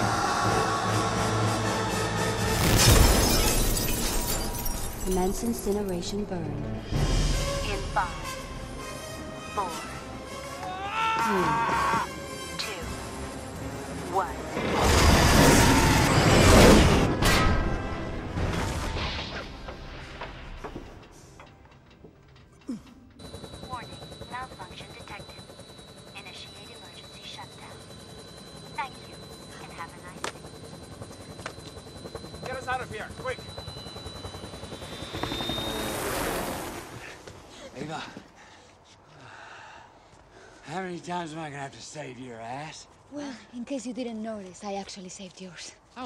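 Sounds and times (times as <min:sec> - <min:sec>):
film music: 0:00.0 - 0:03.7, 0:05.0 - 0:37.3
helicopter engine and rotor: 0:00.0 - 0:10.6, 0:12.0 - 0:17.2, 0:20.2 - 0:37.6.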